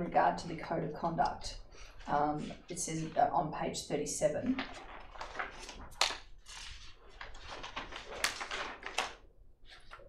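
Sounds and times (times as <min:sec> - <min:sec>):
paper pages rustling: 0:04.5 - 0:10.0
sharp paper crackle: 0:04.5 - 0:10.0.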